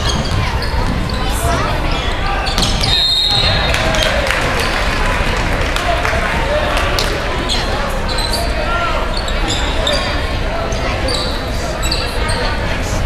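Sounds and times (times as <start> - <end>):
shoes squeaking on gym floor: 0.0 - 3.6, 7.5 - 12.8
crowd chattering: 0.0 - 13.0
ball bouncing: 2.6 - 3.0.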